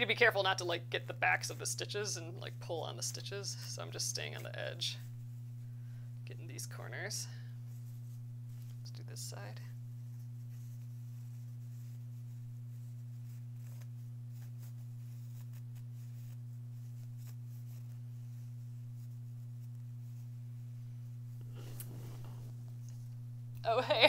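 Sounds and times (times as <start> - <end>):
steady low hum: 0.0 - 24.0
fabric rustling: 6.7 - 23.3.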